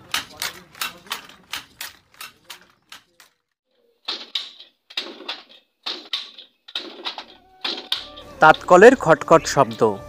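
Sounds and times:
handloom clacking: 0:00.0 - 0:10.0.

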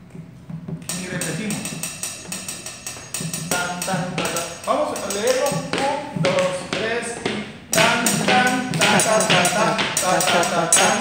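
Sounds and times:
drumsticks on snare and cymbal: 0:00.8 - 0:11.0.

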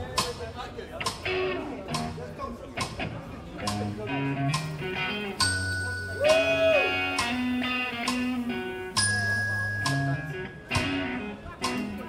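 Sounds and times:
people talking: 0:00.0 - 0:12.0
electric guitar: 0:01.0 - 0:12.0
sharp clicks: 0:03.6 - 0:03.9.

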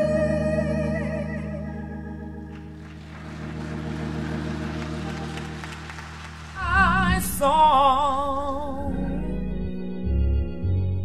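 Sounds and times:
church organ chord: 0:00.0 - 0:11.0.

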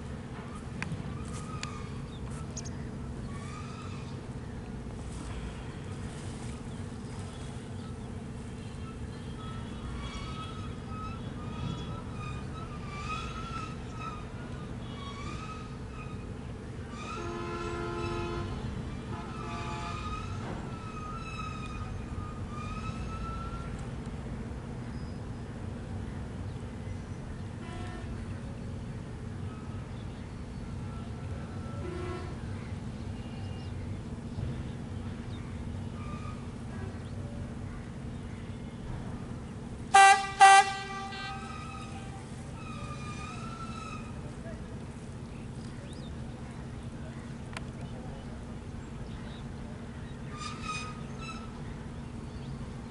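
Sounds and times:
low engine rumble: 0:00.0 - 0:52.9
multi-tone horn blasts: 0:17.0 - 0:20.4, 0:31.8 - 0:32.4, 0:39.9 - 0:44.2
horn toots: 0:39.9 - 0:43.0.

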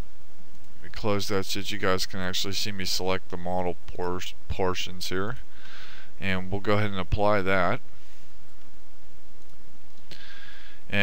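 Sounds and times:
soft breath-like hiss: 0:05.4 - 0:06.2, 0:07.9 - 0:08.5, 0:10.0 - 0:10.9
click: 0:09.4 - 0:10.2.

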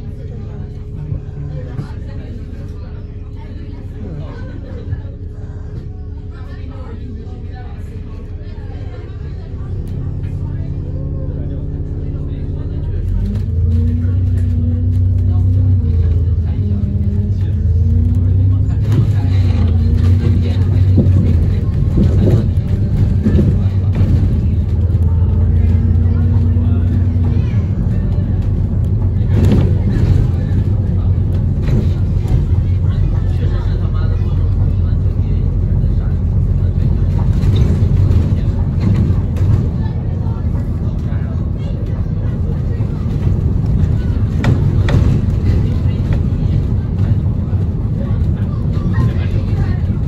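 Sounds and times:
bus engine drone: 0:00.0 - 0:50.0.

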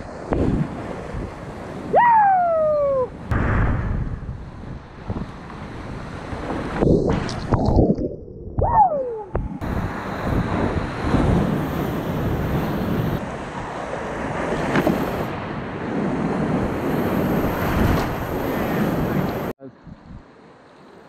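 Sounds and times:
wind buffeting microphone: 0:00.0 - 0:20.3.

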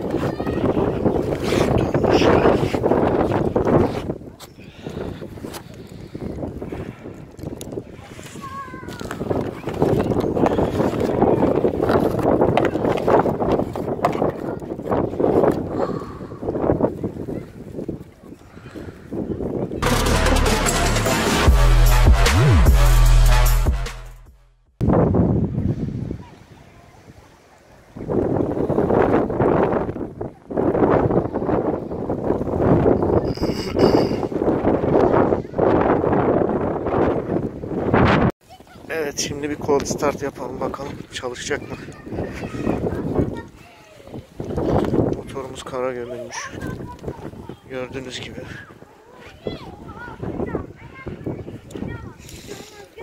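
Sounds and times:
wind on microphone: 0:00.0 - 0:19.8, 0:24.8 - 0:53.0.

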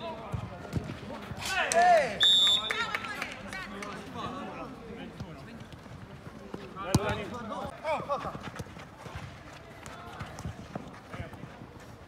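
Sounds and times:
referee's whistle blast: 0:02.2 - 0:02.8.

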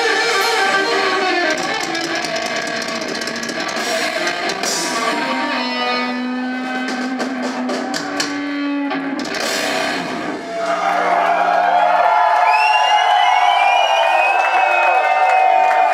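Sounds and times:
live rock band: 0:00.0 - 0:10.7
crowd cheering and whistling: 0:10.2 - 0:15.9.

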